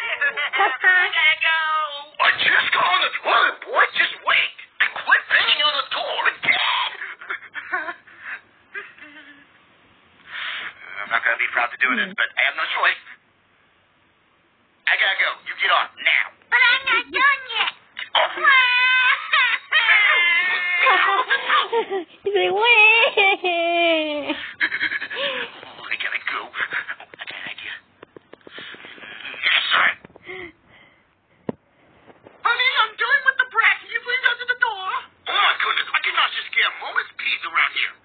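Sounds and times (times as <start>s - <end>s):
squawky gibberish voice: 2.1s - 7.4s, 15.9s - 21.8s, 25.2s - 27.9s, 28.5s - 30.1s.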